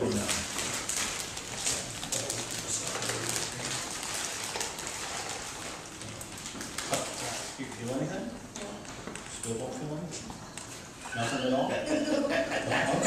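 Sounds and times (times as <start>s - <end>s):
newspaper rustling and crackling: 0.0s - 8.1s.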